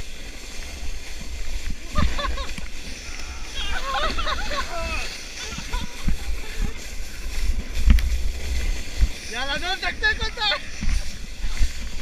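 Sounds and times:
sled rumbling over snow: 0.0 - 12.0
wind on microphone: 0.0 - 12.0.

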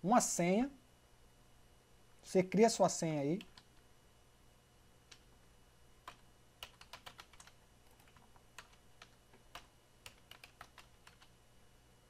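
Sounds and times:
keyboard keystrokes: 6.1 - 11.3.

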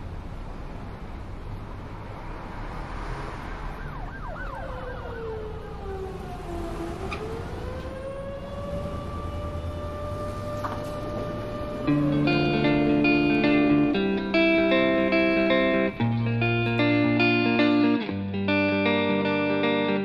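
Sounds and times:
siren wailing: 3.6 - 16.2.

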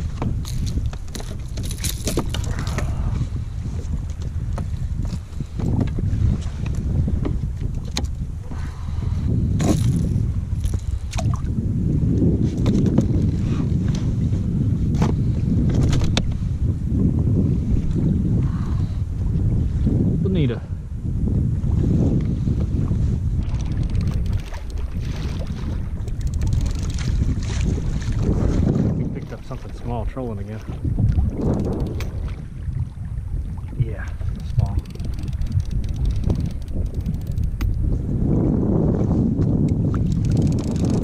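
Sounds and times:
water washing against hull: 0.0 - 20.4, 21.3 - 41.0
wind buffeting microphone: 0.0 - 41.0
sharp clicks and knocks: 31.5 - 32.2.

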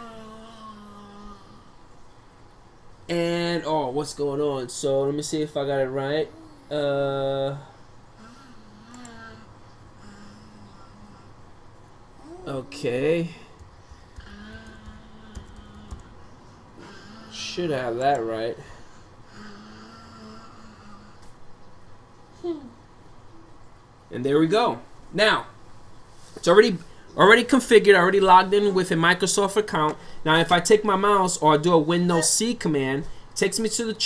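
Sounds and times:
faint low hum: 0.0 - 34.0.

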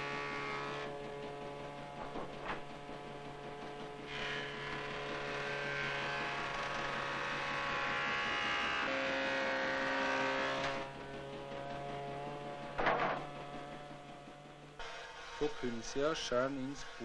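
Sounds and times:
cutting whine into wood: 0.0 - 16.0
milling machine motor hum: 0.0 - 17.0.

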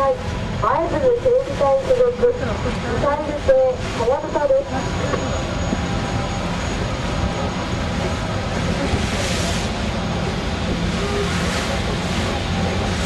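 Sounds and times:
ship engine rumble: 0.0 - 13.0
wind: 0.0 - 13.0
rushing water: 7.1 - 13.0.

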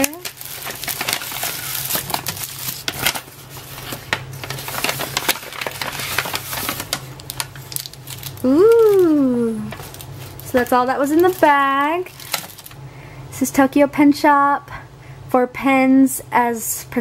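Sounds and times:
paper wrapping crinkling: 0.0 - 12.8.

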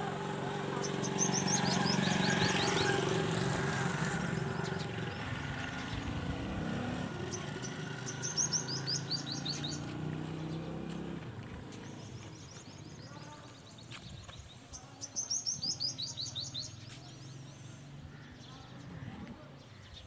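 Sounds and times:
bird chirping: 0.8 - 3.4, 4.2 - 20.0.

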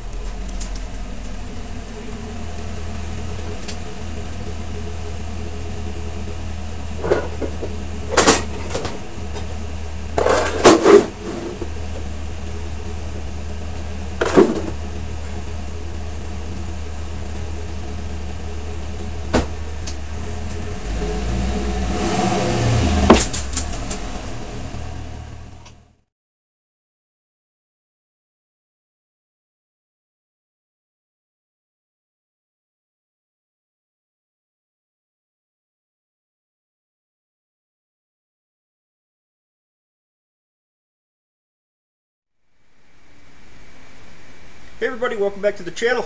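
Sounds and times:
pickup engine idling: 0.0 - 26.0
sharp knocks and clunks: 7.0 - 9.6, 10.2 - 12.1, 14.2 - 14.8, 19.3 - 20.0, 23.0 - 24.2.

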